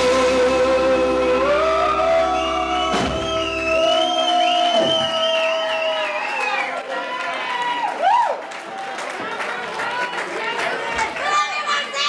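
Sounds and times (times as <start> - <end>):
singer holding a long note: 0.0 - 4.3.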